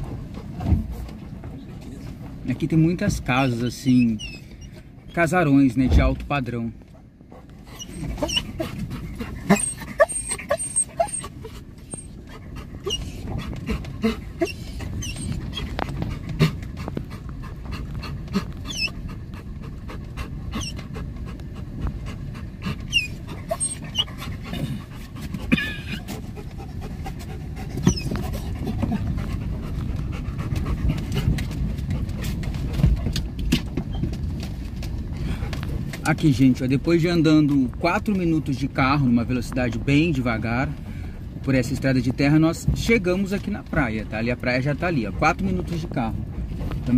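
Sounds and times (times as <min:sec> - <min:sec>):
dog panting: 0:00.0 - 0:05.3, 0:06.8 - 0:39.1, 0:43.0 - 0:46.9
car moving on dirt road: 0:00.0 - 0:46.9
dog whining: 0:03.8 - 0:05.2, 0:07.3 - 0:16.6, 0:17.8 - 0:19.2, 0:20.5 - 0:21.1, 0:22.6 - 0:26.2, 0:27.8 - 0:29.2.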